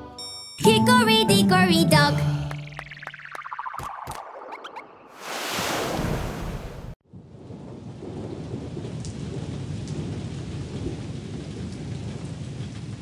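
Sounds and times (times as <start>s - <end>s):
low rumble of thunder: 7.1s - 13.0s
steady rain: 7.1s - 13.0s.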